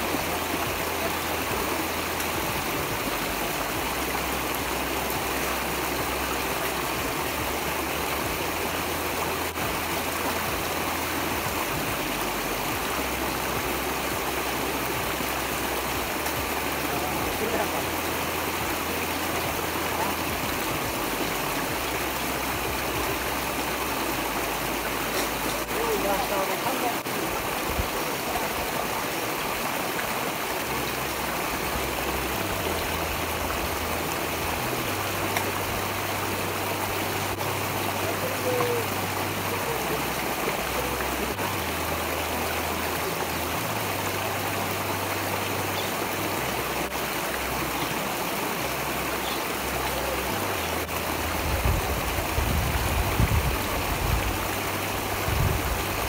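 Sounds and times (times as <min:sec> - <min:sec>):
stream water rushing: 0:00.0 - 0:56.0.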